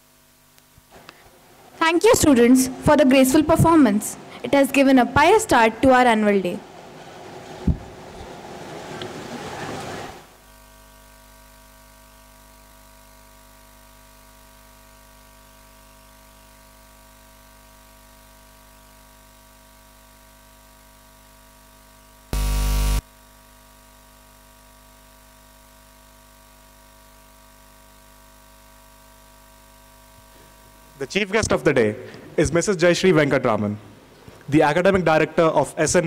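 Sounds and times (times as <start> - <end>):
steady electrical hum: 0.0 - 36.0
loud abrupt buzz: 22.4 - 23.1.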